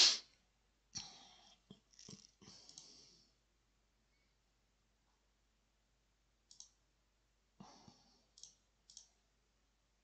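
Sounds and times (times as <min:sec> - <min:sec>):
faint computer mouse clicks: 0:02.0 - 0:03.0, 0:06.5 - 0:06.8, 0:08.3 - 0:09.2.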